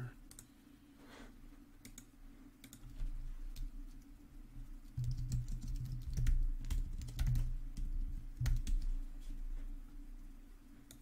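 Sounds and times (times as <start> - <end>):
typing on computer keyboard: 1.8 - 3.7, 4.9 - 8.9.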